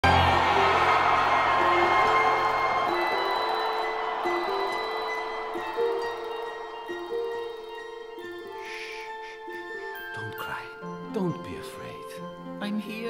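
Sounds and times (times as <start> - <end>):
orchestral chord: 0.0 - 12.6
gentle melody of single notes: 0.4 - 13.0.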